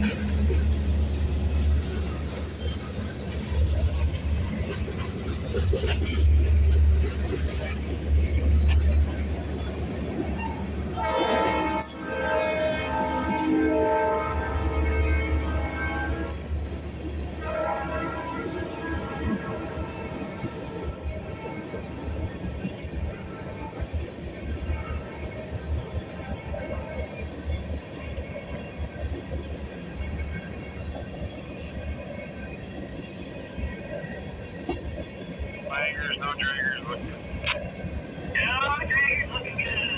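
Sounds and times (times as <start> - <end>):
train wheels rumbling on rail: 0.0 - 39.9
distant train horn: 10.4 - 16.6, 17.3 - 21.9.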